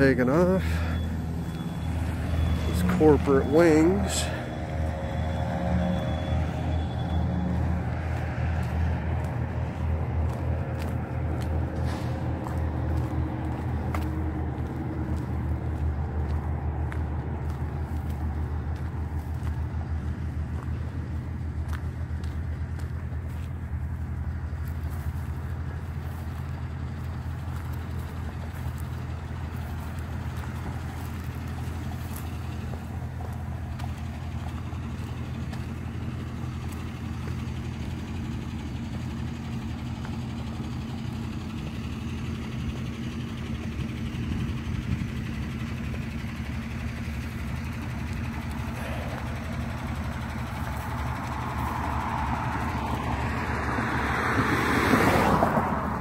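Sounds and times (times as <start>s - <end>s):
truck engine idling: 0.0s - 56.0s.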